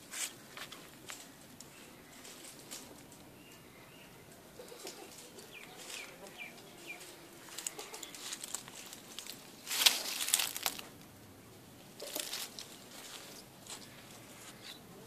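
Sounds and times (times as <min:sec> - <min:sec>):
rustling and crackling: 0:00.0 - 0:03.6, 0:04.6 - 0:11.1, 0:11.9 - 0:14.9.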